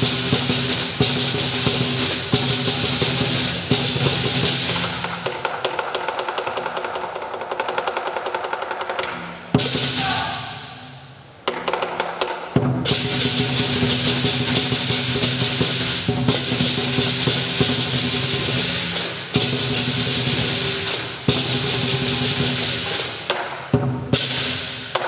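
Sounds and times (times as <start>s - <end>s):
loud cymbal crash: 0.0s - 5.0s, 12.8s - 23.3s
fast drum roll: 0.0s - 9.0s, 9.6s - 10.8s, 12.5s - 25.0s
lion dance percussion band: 0.0s - 25.0s.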